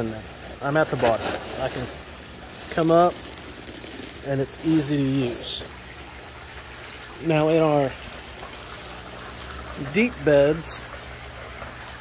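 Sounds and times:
trickle of running water: 0:00.0 - 0:12.0.

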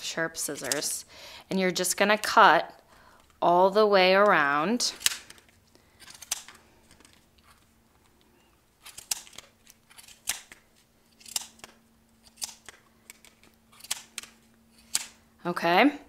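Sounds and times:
faint steady hum: 0:00.0 - 0:16.0
scissors snipping yarn: 0:00.5 - 0:00.9, 0:11.2 - 0:15.1.

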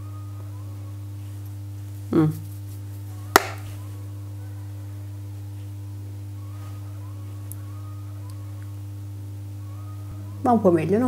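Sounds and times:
low electrical hum: 0:00.0 - 0:11.0
sharp tap on hard surface: 0:03.4 - 0:03.6.

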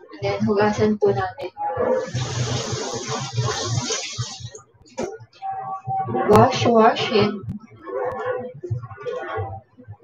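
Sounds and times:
tap water running over lettuce: 0:02.1 - 0:04.5.

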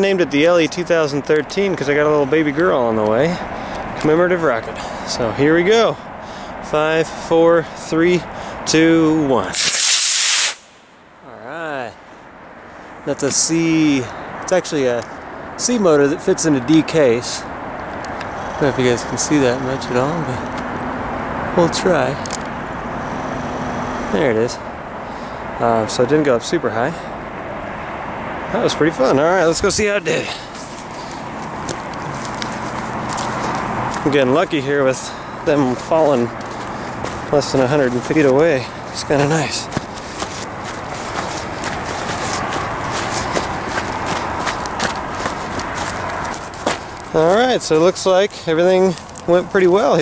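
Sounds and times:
outdoor rumble and hiss: 0:00.0 - 0:50.0
footsteps through grass and brush: 0:30.1 - 0:34.1, 0:35.6 - 0:48.3.

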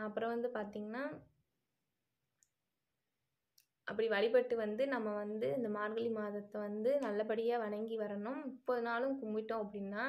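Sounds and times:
woman speaking: 0:00.0 - 0:01.2, 0:03.9 - 0:10.0.

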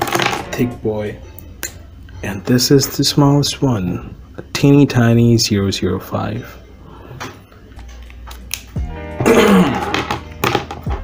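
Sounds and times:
person clearing throat: 0:09.2 - 0:10.1.

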